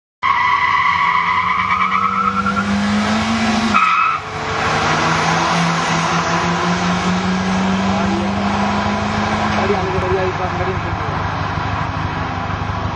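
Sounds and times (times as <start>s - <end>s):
cars racing at full throttle: 0.2s - 12.9s
wind and road rush: 0.2s - 12.9s.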